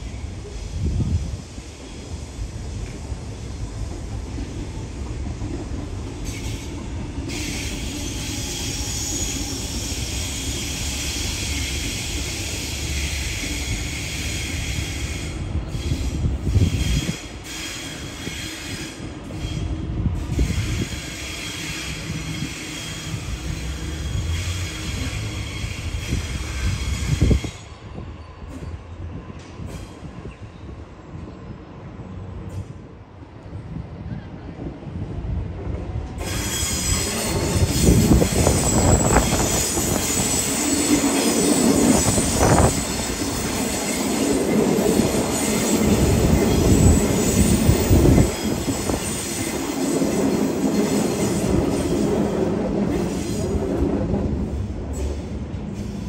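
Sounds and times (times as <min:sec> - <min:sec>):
wheels squealing on rails: 0:00.0 - 0:31.3, 0:36.1 - 0:56.0
electric train rumble: 0:00.0 - 0:56.0.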